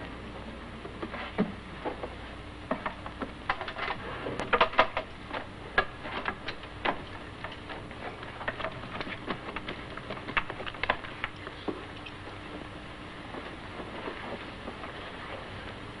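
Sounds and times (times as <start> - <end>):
rustling of clothes: 11.5 - 16.0.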